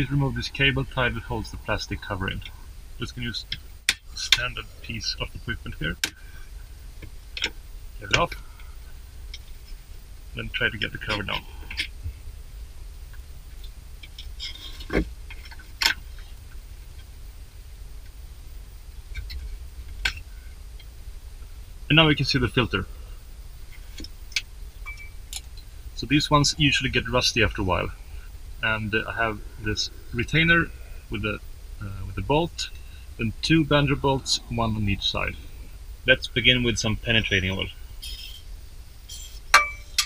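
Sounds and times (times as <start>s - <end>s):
low steady rumble: 0.0s - 40.0s.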